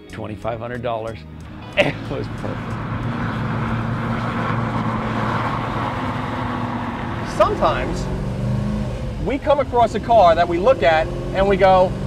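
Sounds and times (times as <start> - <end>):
car engine running: 1.4 - 12.0.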